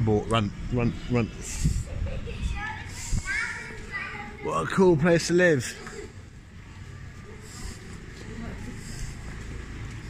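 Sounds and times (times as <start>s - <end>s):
children calling out: 1.3s - 4.6s.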